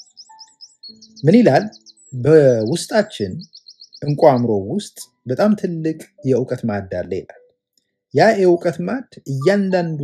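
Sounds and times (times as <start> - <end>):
small bird chirping: 0.0 - 8.4.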